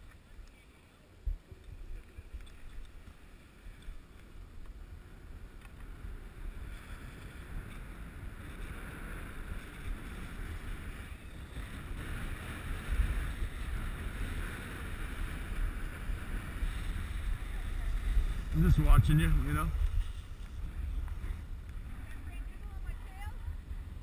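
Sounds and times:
wind buffeting microphone: 0:01.2 - 0:24.0
skis hissing over snow: 0:06.1 - 0:22.5.

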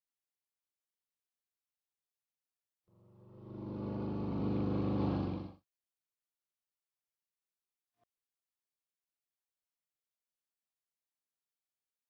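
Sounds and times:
motor scooter engine pulling away: 0:03.2 - 0:05.6.

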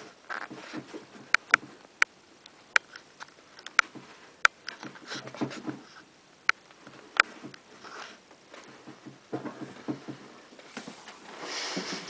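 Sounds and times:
faint rustling in bedding: 0:06.9 - 0:12.0.

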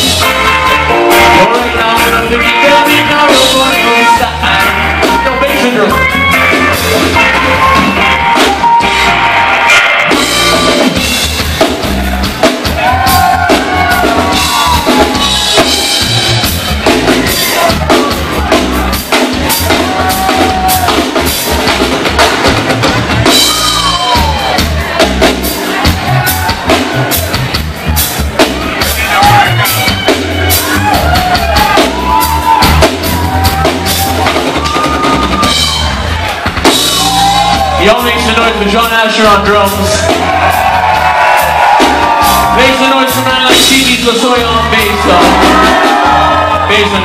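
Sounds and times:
drum kit: 0:00.0 - 0:47.0
electric bass: 0:00.0 - 0:47.0
live band music: 0:00.0 - 0:47.0.

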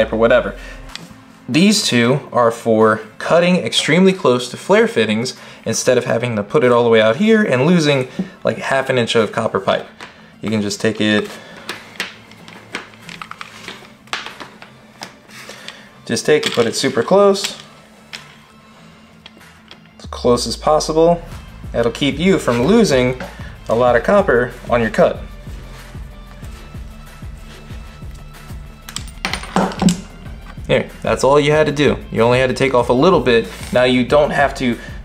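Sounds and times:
background music: 0:00.0 - 0:35.0
metal tools clinking on a workbench: 0:16.3 - 0:18.4, 0:28.9 - 0:30.1.

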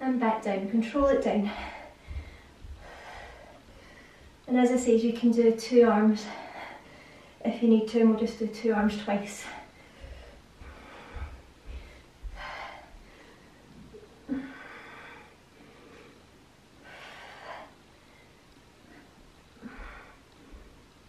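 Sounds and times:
woman breathing hard: 0:01.4 - 0:04.5, 0:06.2 - 0:07.4, 0:09.4 - 0:20.9.

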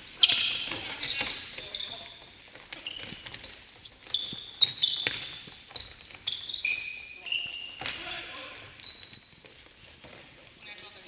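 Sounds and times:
shoes squeaking on wooden floor: 0:00.1 - 0:10.6.

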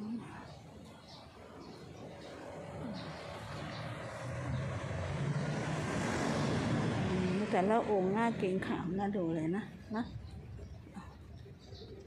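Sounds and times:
passing vehicle engine rumble: 0:00.0 - 0:12.0.

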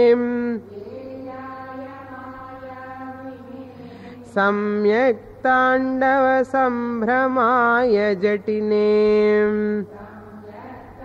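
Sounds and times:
quiet held chanting voice: 0:00.0 - 0:11.0
woman chanting: 0:00.0 - 0:11.0.

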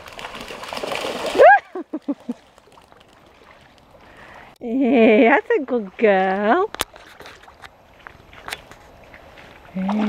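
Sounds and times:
dog splashing through water: 0:00.0 - 0:04.0
person laughing: 0:01.4 - 0:02.4.

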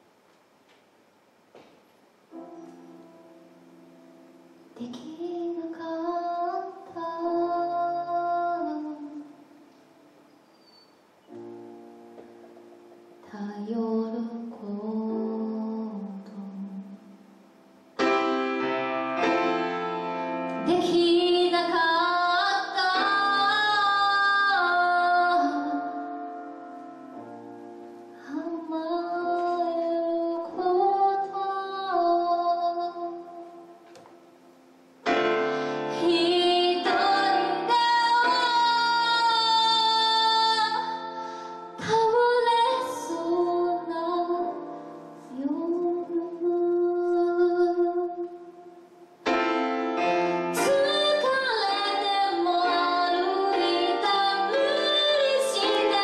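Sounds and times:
grand piano: 0:00.0 - 0:56.0
woman singing: 0:04.8 - 0:09.4, 0:13.2 - 0:17.2, 0:20.6 - 0:26.6, 0:28.2 - 0:33.8, 0:35.9 - 0:48.7, 0:50.5 - 0:56.0.

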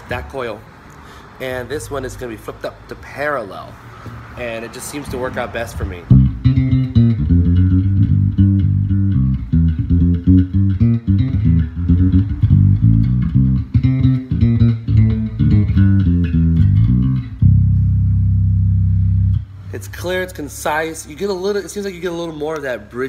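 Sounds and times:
electric bass plucked notes: 0:05.7 - 0:22.7.

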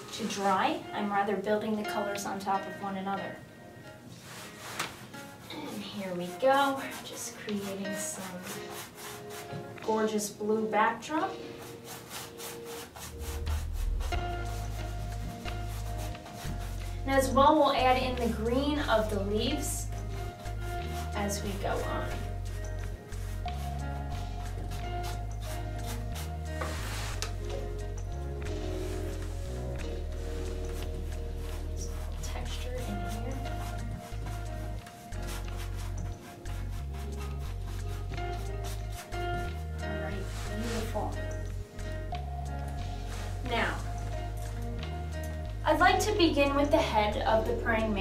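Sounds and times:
background music with low bass: 0:00.0 - 0:48.0
paintbrush scrubbing on canvas: 0:04.1 - 0:42.2, 0:42.8 - 0:44.6.

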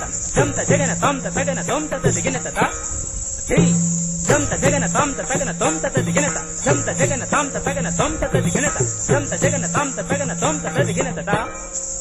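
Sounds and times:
voice reciting rhythmic syllables: 0:00.0 - 0:02.8, 0:03.5 - 0:11.6
steady high hiss: 0:00.0 - 0:12.0.

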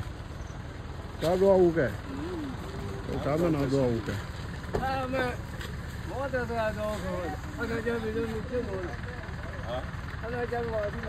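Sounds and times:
pickup truck idling: 0:00.0 - 0:11.0
men talking: 0:01.1 - 0:11.0.

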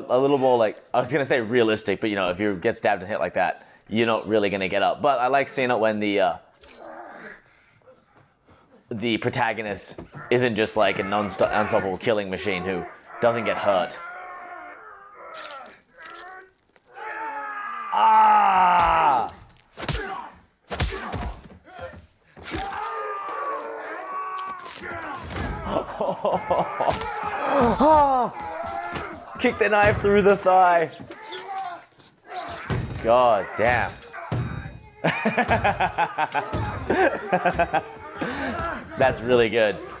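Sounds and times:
man groaning: 0:25.6 - 0:29.3, 0:36.3 - 0:40.0.

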